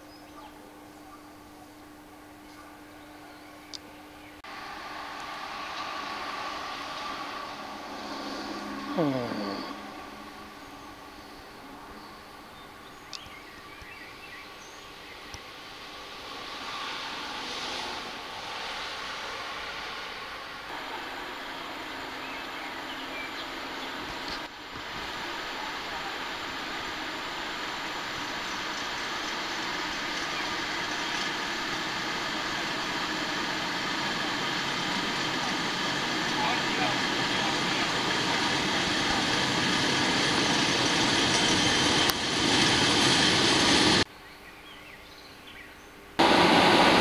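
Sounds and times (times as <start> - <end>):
passenger train approaching: 0.0 - 44.1, 46.2 - 47.0.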